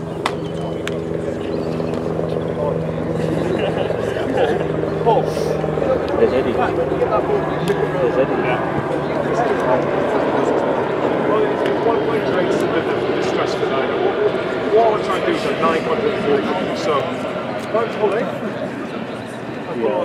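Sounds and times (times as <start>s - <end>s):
chatter of many voices: 0.0s - 20.0s.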